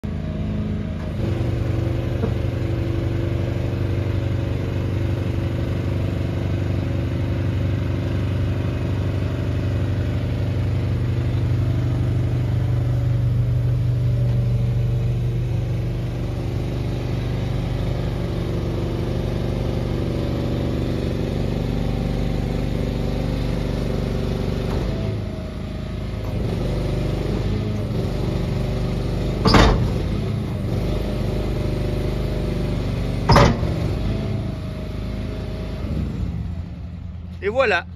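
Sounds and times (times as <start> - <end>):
engine humming: 0.0 - 37.9.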